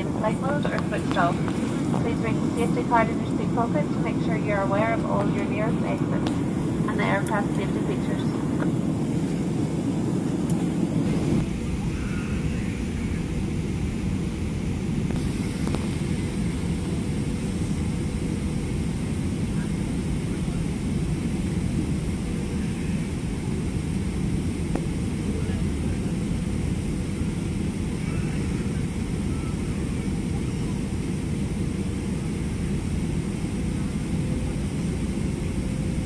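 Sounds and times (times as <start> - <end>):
rushing airflow: 0.0 - 11.6, 15.1 - 18.0
jet engines roaring: 0.0 - 36.0.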